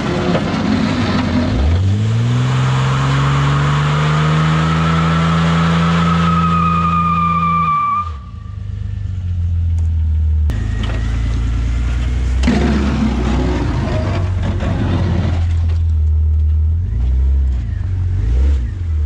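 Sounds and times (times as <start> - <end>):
engine revving hard: 1.5 - 7.2, 12.4 - 15.5
high thin tire squeal: 2.5 - 8.7.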